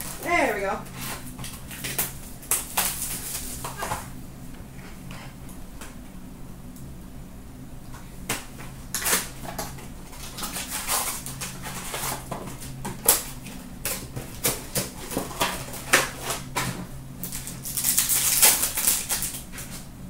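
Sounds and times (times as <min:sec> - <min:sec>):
foil packs tearing open: 0:00.0 - 0:00.4, 0:01.0 - 0:04.1, 0:08.9 - 0:19.8
foil wrappers crinkling: 0:00.0 - 0:04.1, 0:08.5 - 0:19.9.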